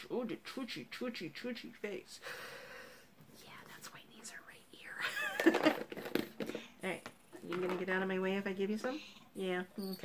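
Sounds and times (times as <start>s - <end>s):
woman whispering baby talk: 3.4s - 5.0s.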